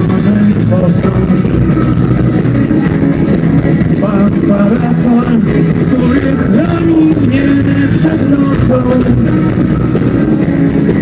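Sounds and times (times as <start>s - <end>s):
person singing: 0.0s - 2.0s, 4.0s - 9.7s
rock band playing live: 0.0s - 11.0s.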